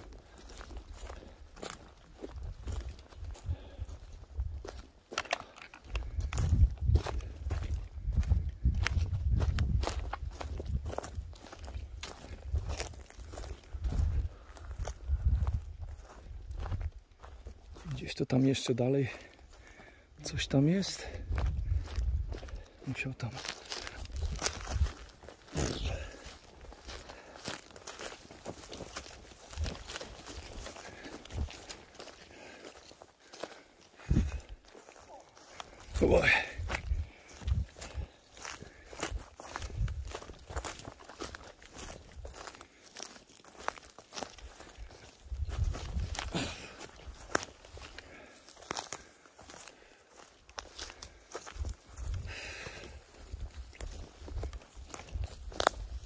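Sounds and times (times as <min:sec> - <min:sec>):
footsteps crunching dry grass: 0:00.0 - 0:56.0.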